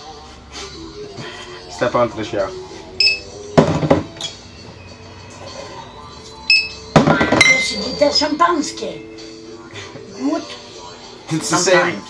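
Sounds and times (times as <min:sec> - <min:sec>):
background music: 0:00.0 - 0:12.0
people talking and laughing: 0:09.4 - 0:12.0.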